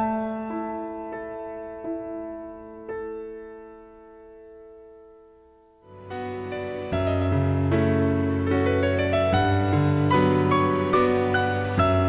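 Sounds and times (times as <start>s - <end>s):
slow piano notes: 0.0s - 12.0s.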